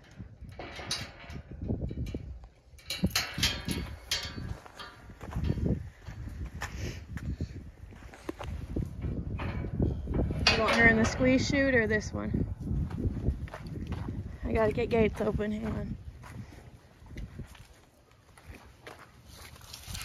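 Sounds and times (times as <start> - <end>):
footsteps crunching on dry dirt: 12.4 - 20.0.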